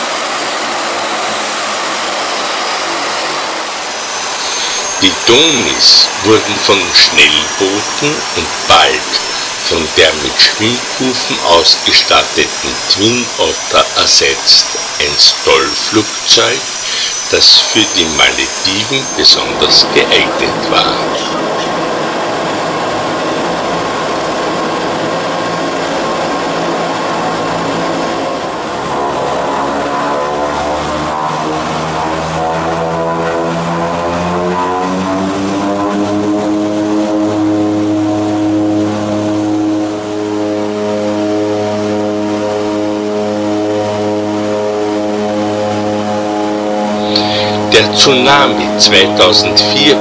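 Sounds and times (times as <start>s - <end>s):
thin high whine: 0.0s - 50.0s
turboprop engines and propellers: 0.0s - 50.0s.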